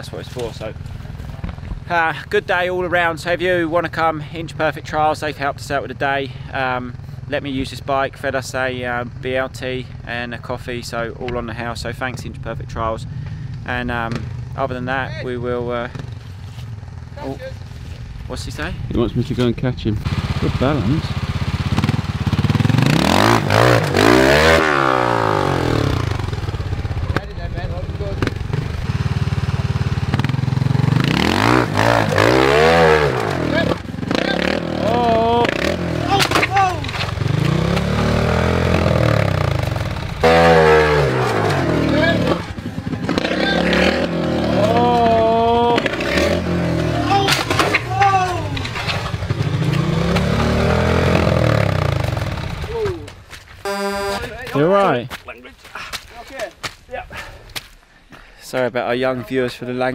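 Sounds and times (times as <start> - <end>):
motorcycle engine revving: 12.2 - 19.2, 19.9 - 54.5.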